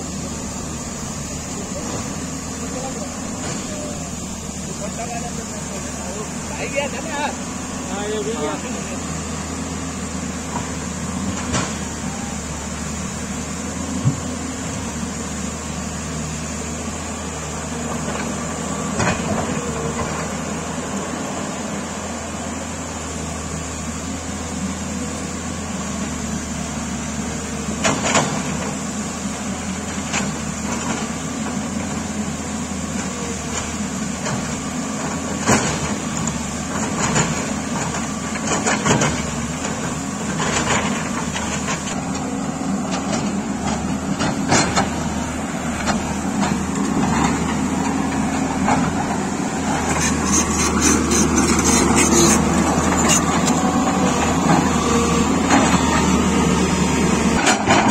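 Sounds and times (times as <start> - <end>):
excavator diesel engine: 0.0 - 57.9.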